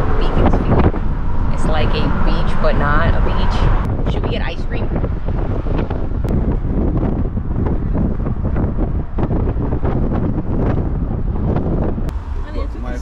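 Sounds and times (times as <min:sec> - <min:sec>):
car rumble from inside cabin: 0:00.0 - 0:13.0
wind buffeting microphone: 0:00.0 - 0:13.0.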